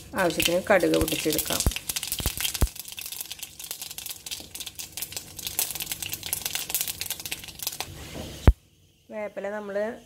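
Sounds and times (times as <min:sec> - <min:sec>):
hot oil crackling and popping: 0:00.0 - 0:08.6.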